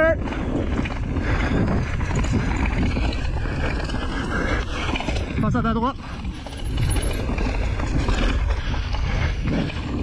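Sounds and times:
bike tyres rolling on dirt: 0:00.0 - 0:10.0
wind rumble on microphone: 0:00.0 - 0:10.0.

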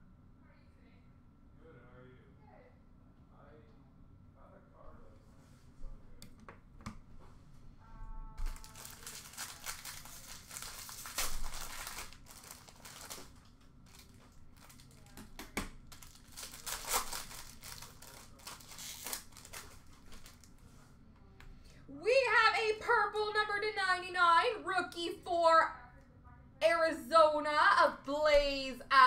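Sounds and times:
plastic wrapper crinkling and tearing: 0:08.4 - 0:20.6.

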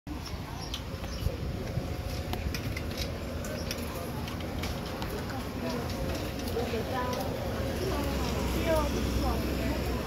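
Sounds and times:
faint distant voices: 0:00.1 - 0:10.0.

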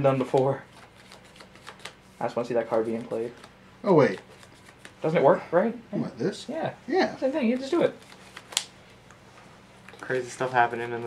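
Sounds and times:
faint steady hum: 0:00.0 - 0:11.0
trading cards handled on table: 0:00.2 - 0:02.0.

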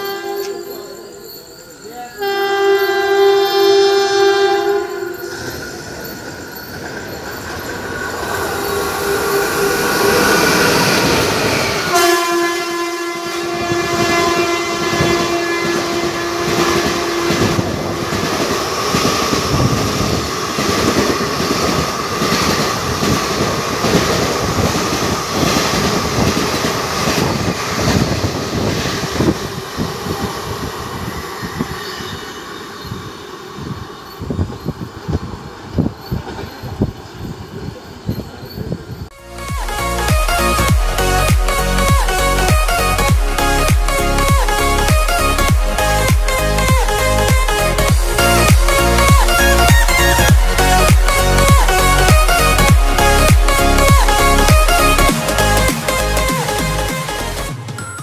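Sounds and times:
locomotive horn blast: 0:00.0 - 0:00.7, 0:02.2 - 0:05.5, 0:09.0 - 0:18.5
train wheels clattering over rails: 0:13.6 - 0:39.1.

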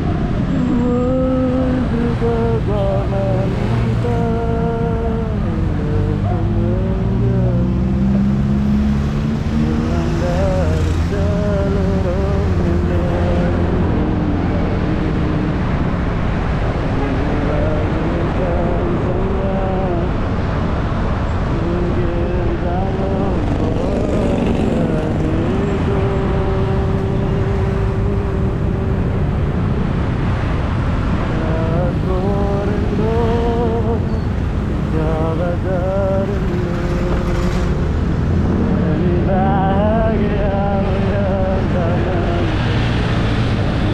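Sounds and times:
man singing: 0:00.0 - 0:30.5, 0:31.1 - 0:43.9
motorcycle engine rumble: 0:00.0 - 0:43.9
road traffic: 0:00.0 - 0:43.9.

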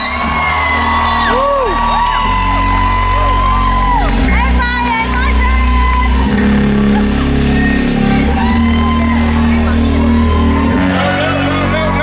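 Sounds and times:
live rock band playing loudly: 0:00.0 - 0:12.0.

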